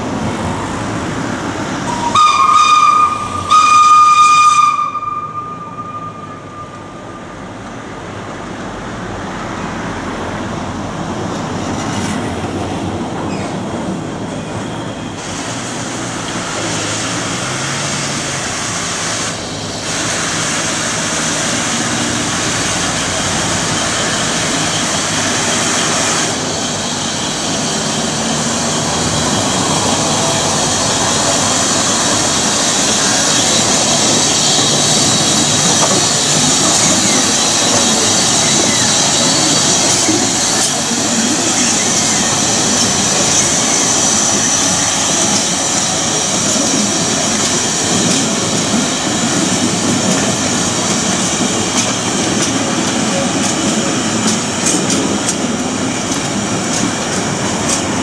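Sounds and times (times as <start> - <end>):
train rolling noise: 0.0 - 58.0
steam locomotive whistle blasts: 1.9 - 7.2
steam hiss: 15.1 - 58.0.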